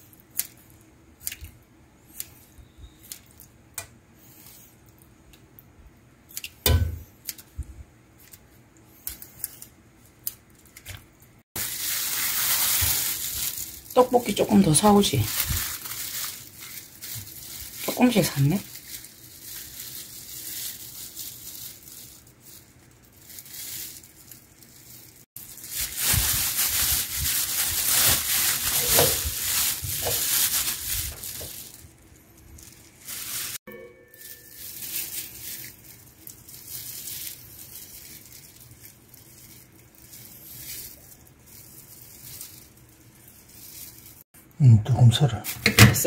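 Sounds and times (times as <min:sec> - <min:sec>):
plastic bags crinkling: 0:09.0 - 0:44.3.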